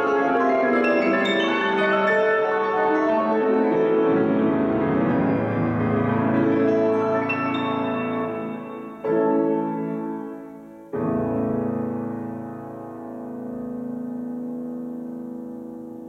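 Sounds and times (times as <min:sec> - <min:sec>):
grand piano chords: 0:00.0 - 0:16.0.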